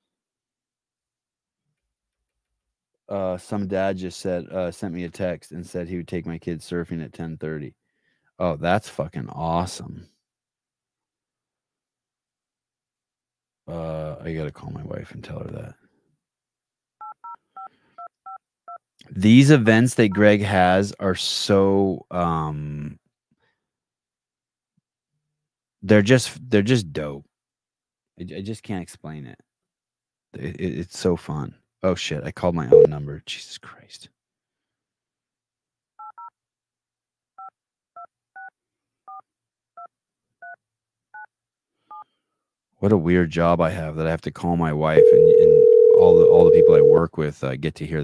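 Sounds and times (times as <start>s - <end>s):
phone keypad touch tones: 45.0s - 47.0s.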